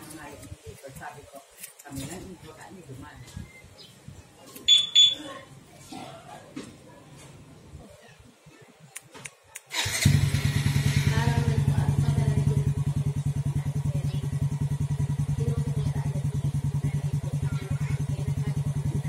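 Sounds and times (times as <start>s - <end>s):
motorcycle engine idling: 9.8s - 19.0s.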